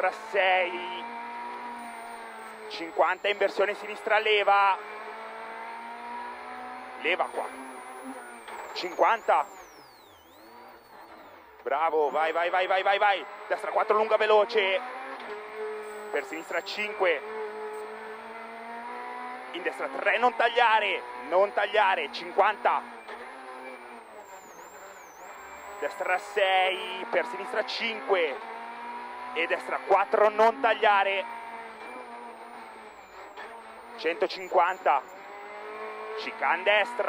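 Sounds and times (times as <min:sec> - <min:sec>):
car engine high-revving: 0:00.0 - 0:37.0
road and tyre noise: 0:00.0 - 0:37.0.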